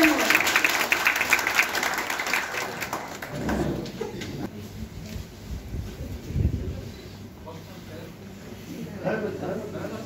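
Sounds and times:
audience applause: 0.0 - 4.5.

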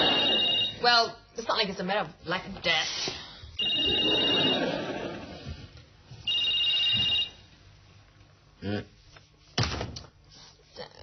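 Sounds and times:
mobile phone ringing: 0.0 - 0.9, 3.6 - 4.7, 6.2 - 7.4.

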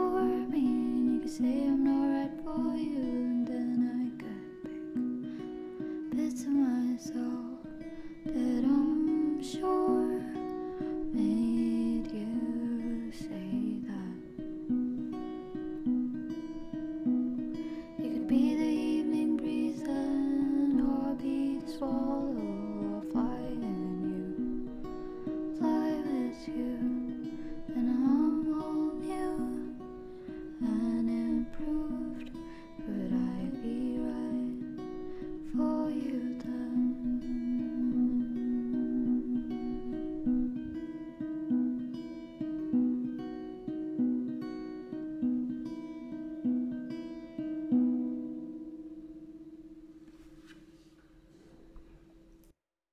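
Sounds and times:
person singing: 0.0 - 5.0, 6.1 - 14.4, 17.9 - 40.7
acoustic guitar: 0.0 - 52.5.

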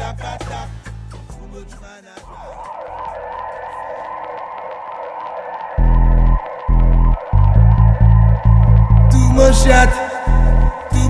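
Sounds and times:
dub reggae music: 0.0 - 11.0
siren sound effect wailing: 2.2 - 11.0.

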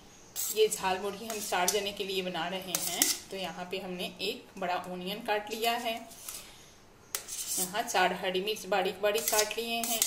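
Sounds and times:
metal spoon scraping steel plate: 0.4 - 2.0, 2.6 - 3.3, 7.1 - 7.9, 9.1 - 10.0.

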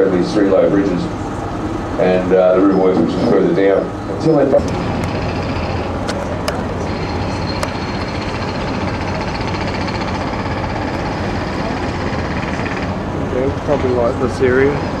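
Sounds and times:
boat engine humming: 0.0 - 15.0.

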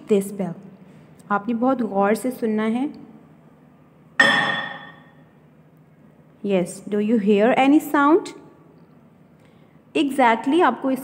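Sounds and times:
metal plate bell clang: 4.2 - 5.2.

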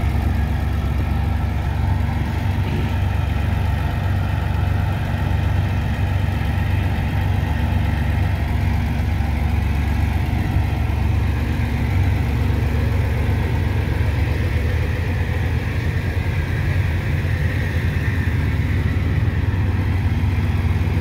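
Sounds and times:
dredger engine droning: 0.0 - 21.0.

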